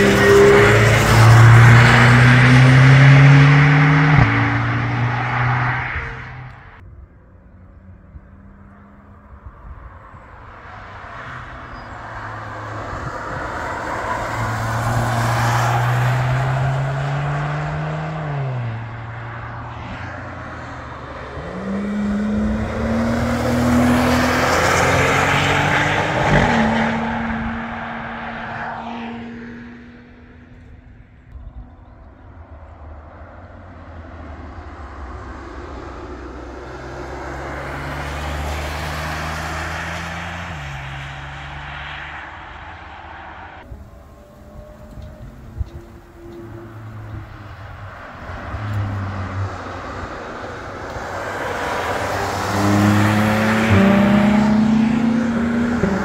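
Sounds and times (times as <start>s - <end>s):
race cars accelerating past: 0.0s - 6.8s, 7.8s - 30.9s, 33.4s - 56.0s.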